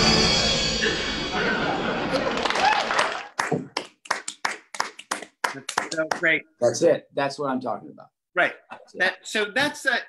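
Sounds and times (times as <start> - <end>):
sharp hand claps: 2.2 - 6.4.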